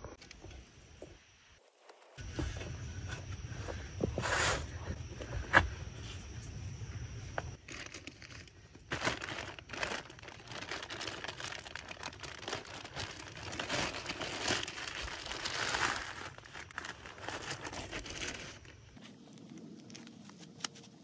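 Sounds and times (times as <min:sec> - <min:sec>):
plastic bag crinkling: 0:07.6 - 0:20.6.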